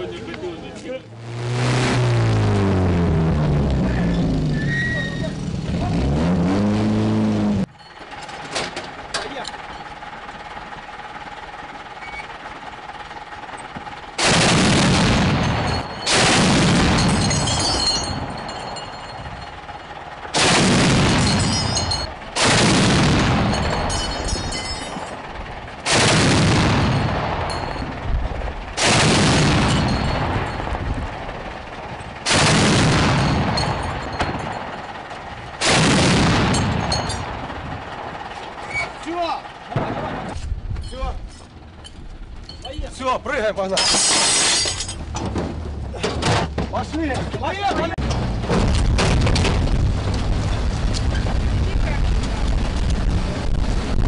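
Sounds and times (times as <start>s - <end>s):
autocannon firing bursts: 14.0s - 18.7s, 19.5s - 38.3s.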